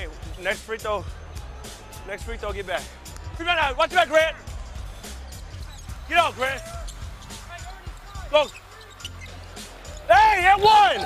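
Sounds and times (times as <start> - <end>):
player shouting: 10.1 - 11.0.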